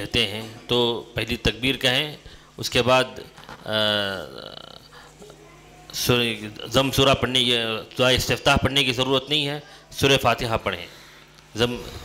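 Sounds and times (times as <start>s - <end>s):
man speaking: 0.0s - 4.9s, 6.0s - 10.9s, 11.5s - 12.0s.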